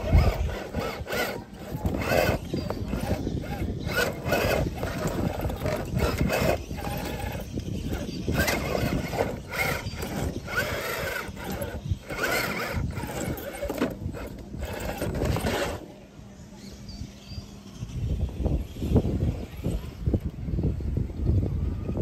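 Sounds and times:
electric motor whining: 0.0s - 15.8s.

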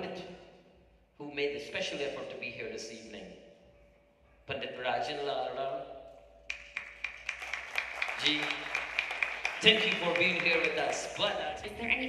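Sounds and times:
audience applause: 6.5s - 11.4s.

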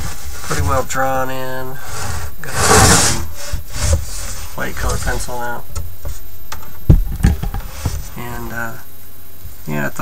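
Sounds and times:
rubbing scraping noise: 1.8s - 5.4s.

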